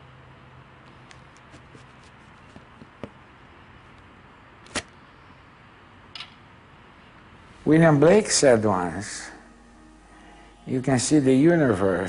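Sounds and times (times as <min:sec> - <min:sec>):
arrow pulled from target: 0:04.6 - 0:04.9.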